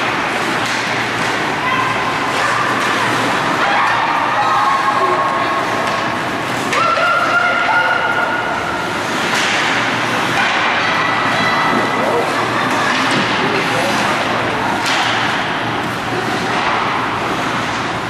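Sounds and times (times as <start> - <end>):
skates and sticks on ice: 0.0 - 11.6.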